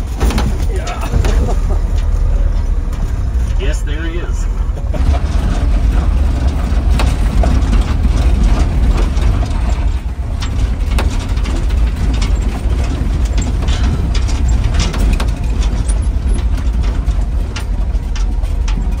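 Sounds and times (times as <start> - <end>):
engine and drivetrain rumble: 0.0 - 19.0
rattling and clanking of body: 0.0 - 19.0.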